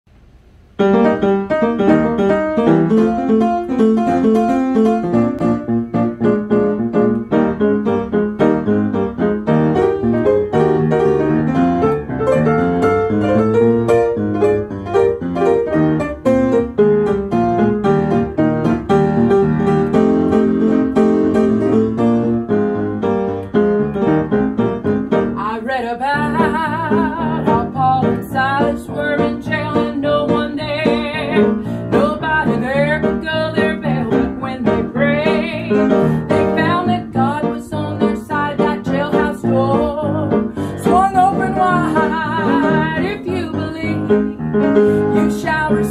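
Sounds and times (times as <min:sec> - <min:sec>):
upright piano gospel chords: 0:00.7 - 0:45.9
woman singing with vibrato: 0:25.4 - 0:45.9.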